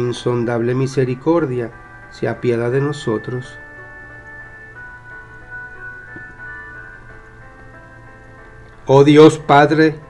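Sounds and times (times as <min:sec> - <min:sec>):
instrumental music with held notes: 0:00.0 - 0:10.0.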